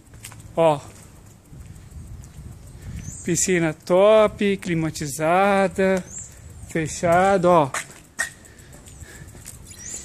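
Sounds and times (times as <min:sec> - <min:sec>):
low microphone rumble: 0:00.0 - 0:07.6
soft footsteps walking: 0:00.0 - 0:10.0.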